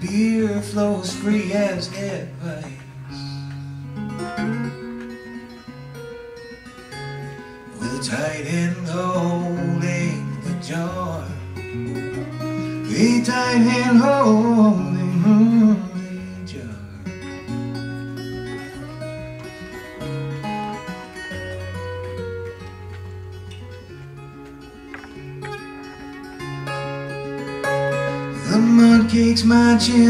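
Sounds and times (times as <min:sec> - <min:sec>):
man singing: 0:00.0 - 0:03.5, 0:07.7 - 0:11.7, 0:12.8 - 0:17.1, 0:28.3 - 0:30.0
acoustic guitar playing: 0:00.0 - 0:30.0.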